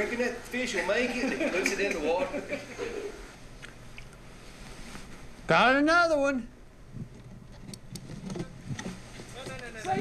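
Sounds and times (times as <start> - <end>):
handling noise: 7.0 - 10.0.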